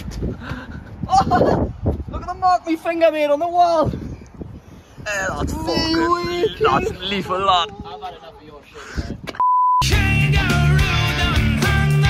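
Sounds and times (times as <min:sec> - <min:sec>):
rock music with guitar: 0:09.8 - 0:12.0.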